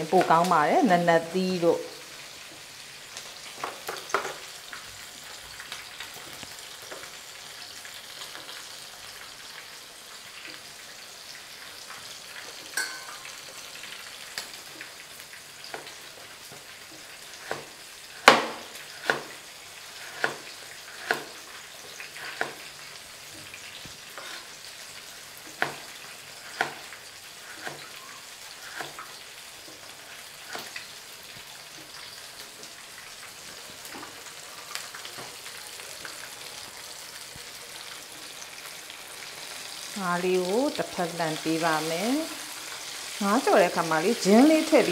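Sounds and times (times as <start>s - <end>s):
fish deep-frying in oil: 0.0s - 44.9s.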